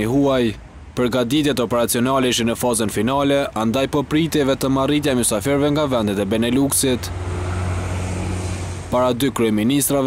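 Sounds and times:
bus passing: 0:00.0 - 0:10.0
cars passing: 0:00.0 - 0:10.0
low engine hum: 0:04.1 - 0:10.0.

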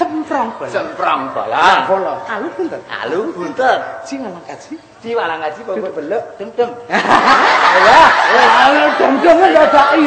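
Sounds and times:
man speaking: 0:00.0 - 0:06.9
audience laughter: 0:06.9 - 0:10.0.

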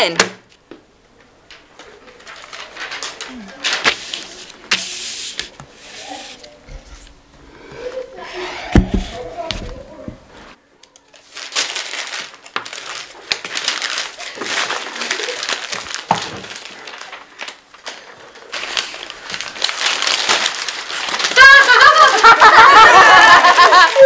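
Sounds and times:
paper crinkling: 0:01.5 - 0:07.1, 0:09.0 - 0:24.0
loud voices: 0:21.3 - 0:24.0.

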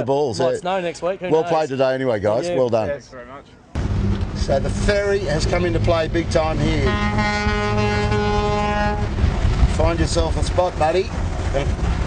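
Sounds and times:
ferry horn blast: 0:03.8 - 0:09.5
wind rumble: 0:03.8 - 0:12.0.

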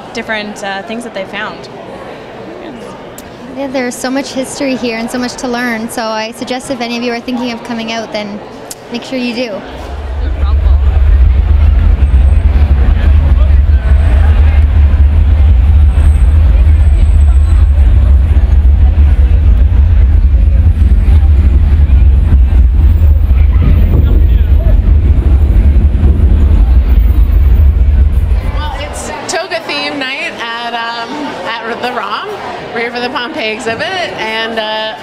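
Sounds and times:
crowd voices: 0:00.0 - 0:35.0
deep rumble: 0:09.5 - 0:29.4.

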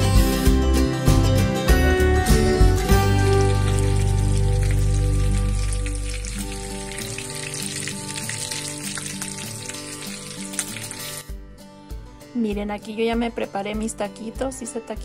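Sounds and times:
background music: 0:00.0 - 0:15.0
food sizzling in oil: 0:02.9 - 0:11.4.

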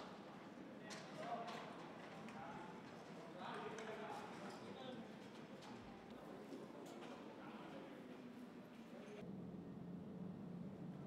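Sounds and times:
distant voices in a hall: 0:00.0 - 0:11.0.

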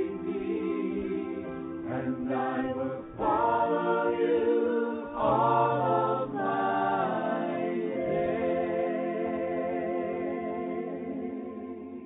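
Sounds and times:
choir singing sustained chords: 0:00.0 - 0:12.0.

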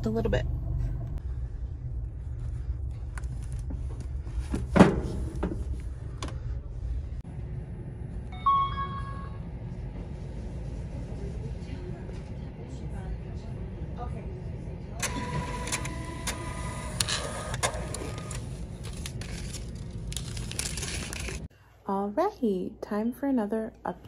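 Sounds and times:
short electronic beep: 0:08.3 - 0:09.5
receipt printer running: 0:15.0 - 0:21.4.

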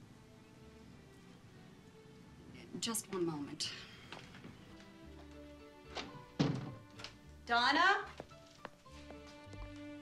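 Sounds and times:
soft background music: 0:00.0 - 0:10.0
front door thunk closing: 0:05.9 - 0:07.1.

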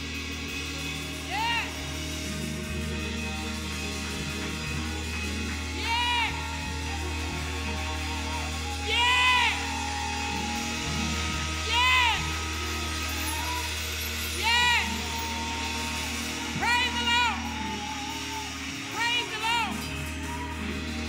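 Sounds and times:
live band music: 0:00.0 - 0:21.0.

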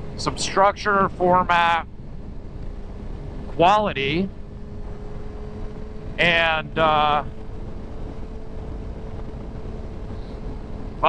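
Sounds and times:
motorcycle engine cruising: 0:00.0 - 0:11.0
road rumble: 0:00.0 - 0:11.0.

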